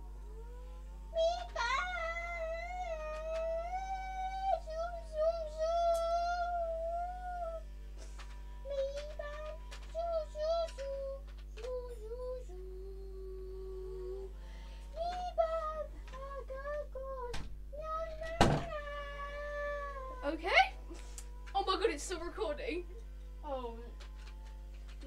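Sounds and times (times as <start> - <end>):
girl singing: 1.1 - 7.7, 8.6 - 14.3, 14.9 - 20.2
loud knock: 18.4 - 18.7.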